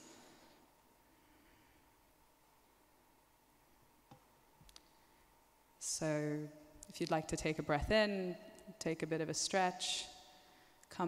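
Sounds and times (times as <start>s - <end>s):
woman speaking: 5.8s - 10.1s.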